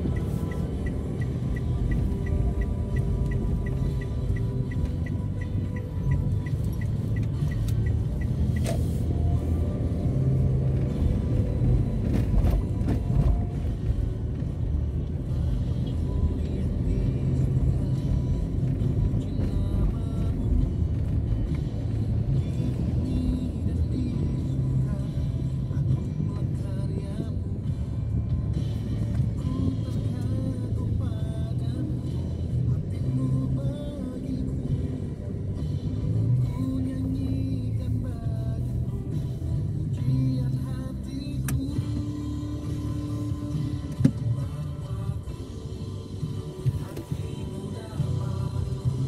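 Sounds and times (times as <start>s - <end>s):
music with steady bass line: 0.0s - 49.0s
vehicle rumbling: 0.0s - 49.0s.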